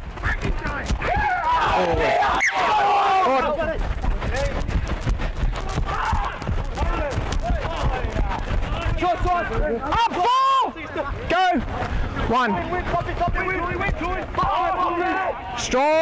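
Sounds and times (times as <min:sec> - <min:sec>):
players shouting calls: 0:00.2 - 0:04.0, 0:05.5 - 0:11.7, 0:12.3 - 0:16.0
steady low rumble: 0:03.1 - 0:10.1
sharp crack: 0:04.3 - 0:08.9.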